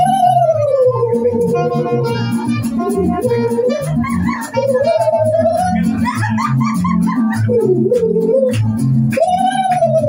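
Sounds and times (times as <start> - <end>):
bass guitar notes: 0.0 - 10.0
guitar strumming: 0.0 - 10.0
held melody line: 0.0 - 10.0.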